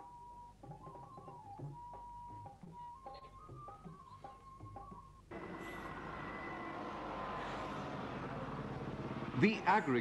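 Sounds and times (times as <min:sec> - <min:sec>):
heavy vehicle engine running: 0:05.3 - 0:09.6.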